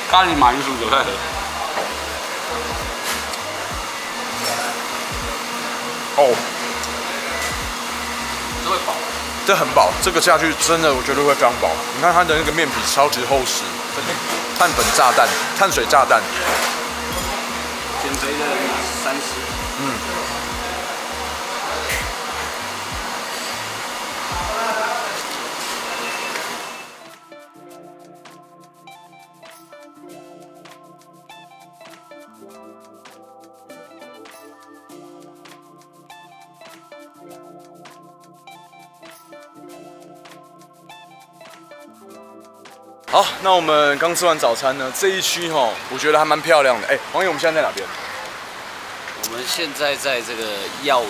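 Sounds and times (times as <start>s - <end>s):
background music bass line: 0.0s - 4.2s, 5.1s - 5.4s, 6.8s - 13.5s, 16.9s - 24.6s, 27.0s - 43.2s
background music with bass: 0.0s - 5.4s, 6.2s - 15.1s, 15.7s - 24.9s.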